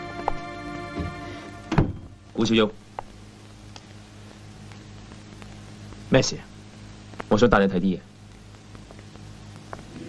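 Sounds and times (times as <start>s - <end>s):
dull thunk: 1.0s - 2.1s.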